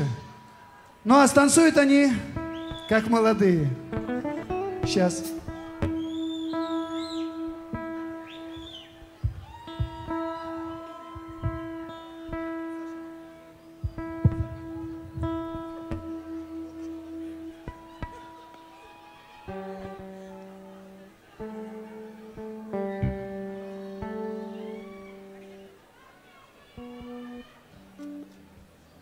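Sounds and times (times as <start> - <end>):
guitar chords: 0.0 - 25.9, 26.7 - 29.0
live band playing: 2.1 - 25.7.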